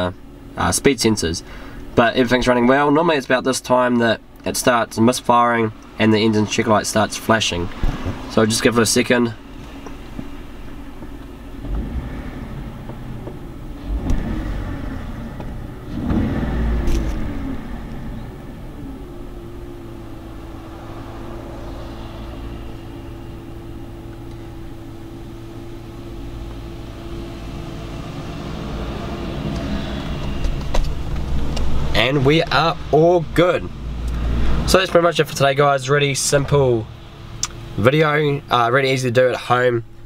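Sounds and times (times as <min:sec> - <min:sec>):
car engine idling: 0:00.0 - 0:40.0
faint whine: 0:00.0 - 0:40.0.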